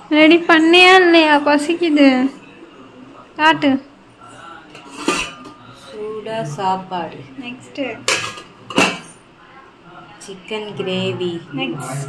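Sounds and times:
metal plates and lids clattering: 4.8 - 5.6, 8.1 - 9.2.

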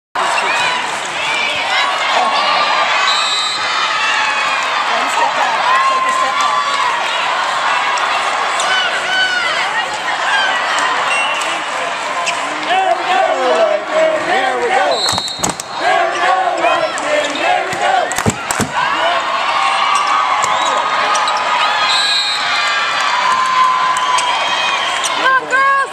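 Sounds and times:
people talking and calling out: 0.2 - 22.4
volleyball hits: 17.7 - 18.9.

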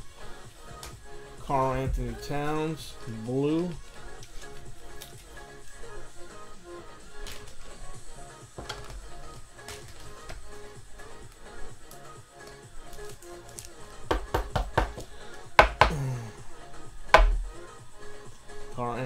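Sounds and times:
repeating background music: 0.0 - 19.0.

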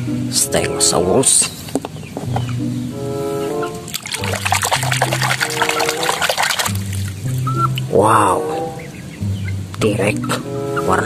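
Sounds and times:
slow background music: 0.0 - 11.0
water splashing in plastic basin: 3.9 - 7.9.

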